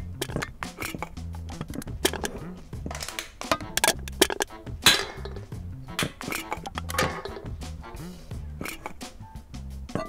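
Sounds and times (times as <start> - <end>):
music with bass line: 0.0 - 10.0
soda can being crushed: 0.2 - 5.2.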